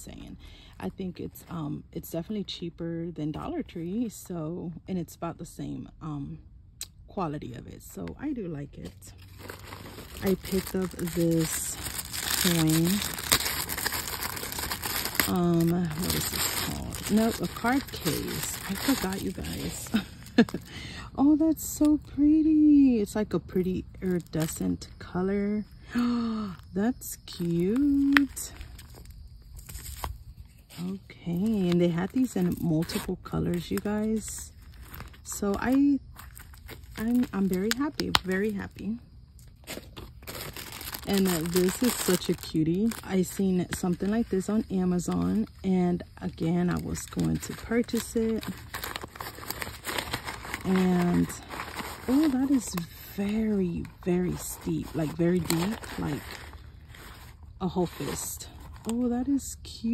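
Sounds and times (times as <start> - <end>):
plastic bag crinkling: 8.8 - 20.8, 23.7 - 25.0, 27.0 - 38.8, 39.4 - 45.6, 46.3 - 59.0.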